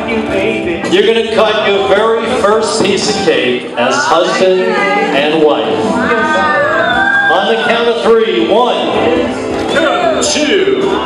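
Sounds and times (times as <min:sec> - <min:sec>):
instrumental backing: 0:00.0 - 0:11.0.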